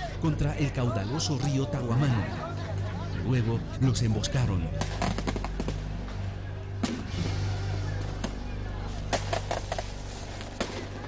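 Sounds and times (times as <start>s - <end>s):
gunshots: 4.8s - 5.8s.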